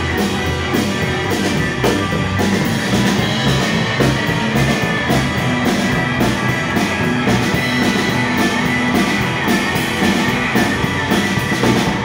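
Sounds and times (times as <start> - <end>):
drum kit driving beat: 0.0 - 12.0
hollow-body electric guitars: 0.0 - 12.0
upright bass: 0.0 - 12.0.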